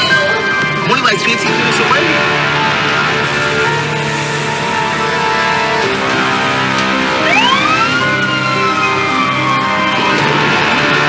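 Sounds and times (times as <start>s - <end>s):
background music: 0.0s - 11.0s
siren wail: 0.0s - 11.0s.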